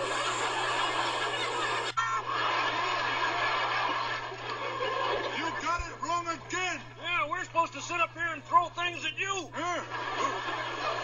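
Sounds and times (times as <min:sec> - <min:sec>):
laughter on television: 0:00.0 - 0:06.0, 0:09.6 - 0:11.0
crowd noise: 0:00.0 - 0:11.0.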